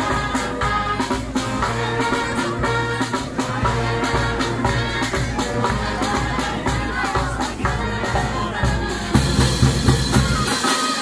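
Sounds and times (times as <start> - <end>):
bass drum and percussion beat: 0.0 - 11.0
horn and sousaphone chords: 0.0 - 11.0.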